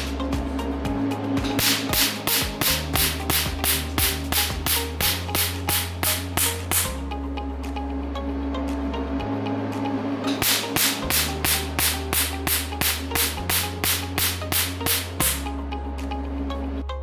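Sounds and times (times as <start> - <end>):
background music: 0.0 - 17.0
laser firing sharp snaps: 1.6 - 7.0, 10.4 - 15.5.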